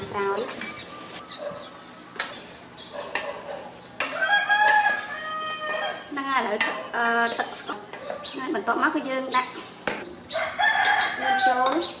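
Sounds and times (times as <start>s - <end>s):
rooster crowing: 4.0s - 6.1s, 10.3s - 11.6s.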